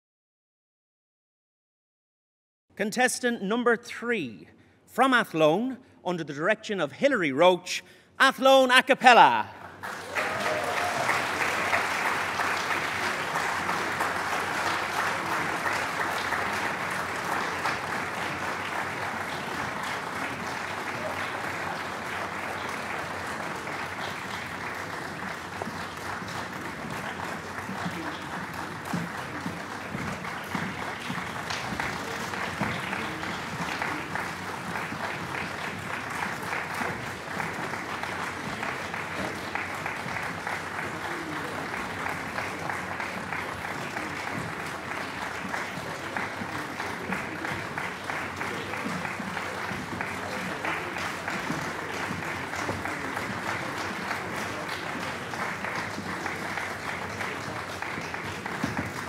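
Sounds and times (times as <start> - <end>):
audience applauding: 8.3 - 59.0.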